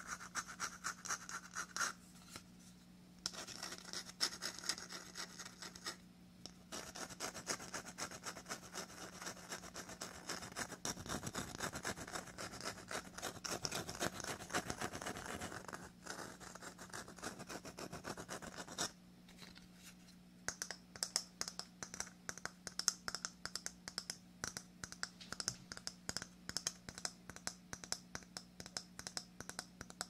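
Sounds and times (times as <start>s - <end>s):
scratching on a hard shell: 0.0s - 2.4s, 3.2s - 30.0s.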